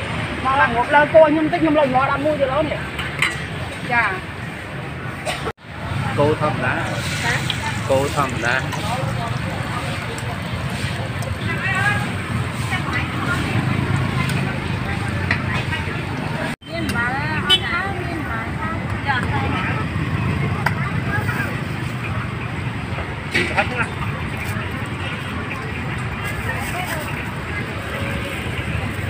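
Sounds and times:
street ambience: 0.0 - 29.0.

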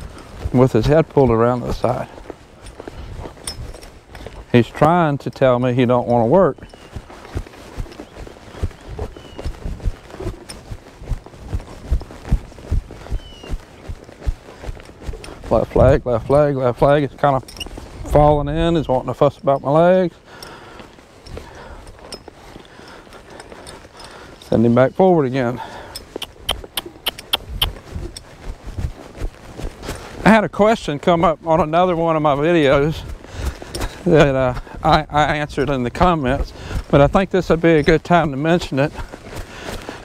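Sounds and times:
horse hoofbeats on dirt: 0.0 - 40.0.

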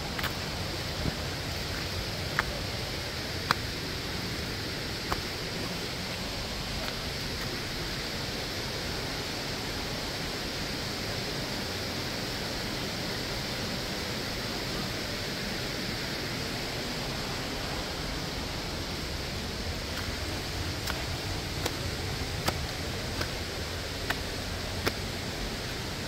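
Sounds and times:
waterfall rushing: 0.0 - 26.0.

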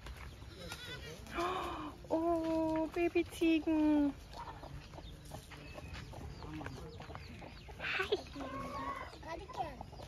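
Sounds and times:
chickens clucking: 0.1 - 10.0
goat kid bleating: 0.5 - 1.4.

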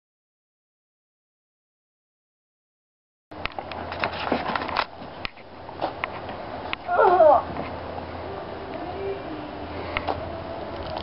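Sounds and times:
steady low hum: 3.3 - 11.0.

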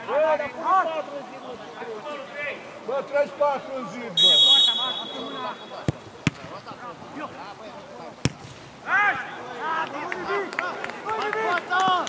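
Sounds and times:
players shouting: 4.0 - 12.0
referee's whistle: 4.2 - 5.9
football being kicked: 5.8 - 6.8, 8.2 - 8.8.

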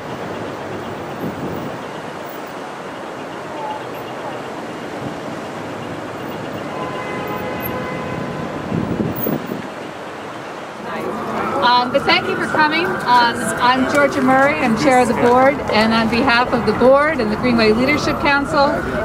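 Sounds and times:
traffic noise: 0.0 - 19.0.

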